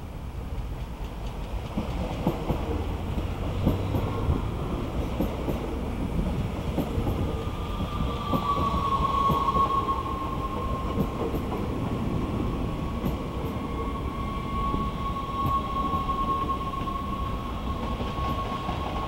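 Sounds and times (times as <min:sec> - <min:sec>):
train wheels rumbling on rails: 0:00.0 - 0:19.0
train motor whine: 0:06.8 - 0:19.0.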